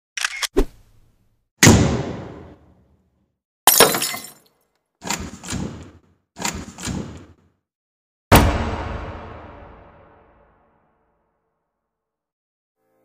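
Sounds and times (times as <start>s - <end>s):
deep boom: 8.3s - 10.5s.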